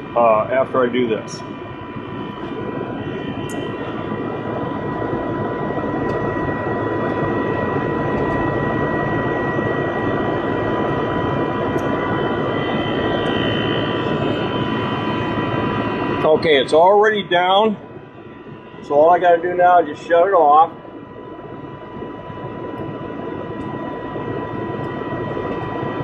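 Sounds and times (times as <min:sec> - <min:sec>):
heat pump running: 0:00.0 - 0:26.0.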